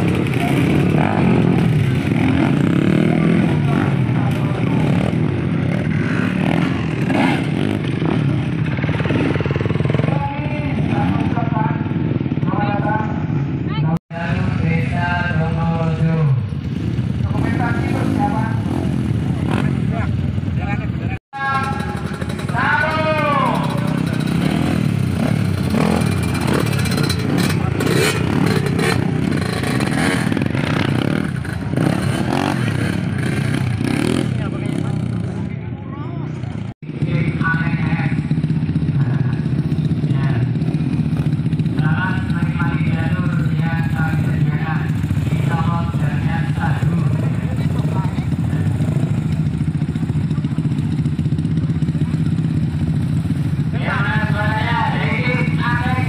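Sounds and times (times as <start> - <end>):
dirt bike engines idling and revving: 0.0 - 56.0
people talking: 3.0 - 5.1, 10.0 - 11.9, 12.5 - 16.4, 17.3 - 18.6, 19.5 - 24.2, 34.3 - 38.2, 40.1 - 40.5, 41.8 - 49.1, 53.7 - 56.0.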